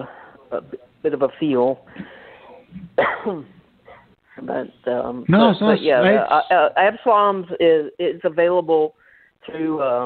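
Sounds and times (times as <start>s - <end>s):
person coughing: 3.0s - 4.1s.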